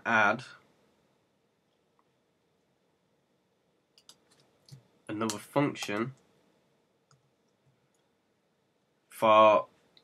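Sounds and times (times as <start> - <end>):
faint computer clicks: 4.0 - 6.3.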